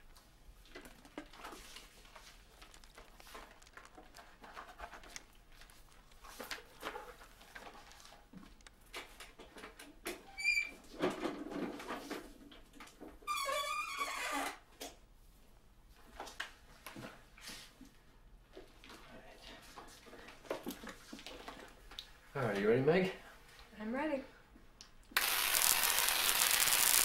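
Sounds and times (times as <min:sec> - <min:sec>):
brief squeak: 0:10.2 - 0:10.8.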